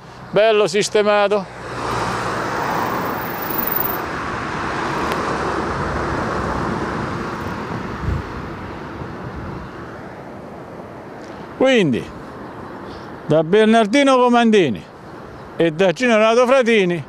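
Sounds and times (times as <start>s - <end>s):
cars passing on road: 0.0s - 15.8s.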